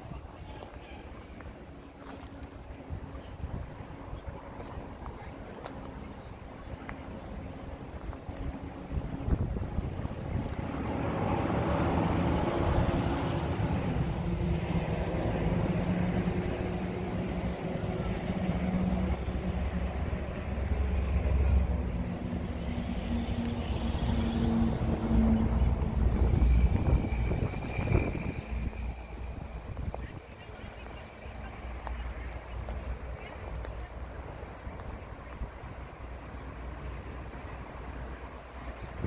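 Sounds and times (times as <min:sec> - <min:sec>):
engine running: 0:00.4 - 0:38.6
wind on microphone: 0:02.7 - 0:20.0, 0:22.0 - 0:31.0.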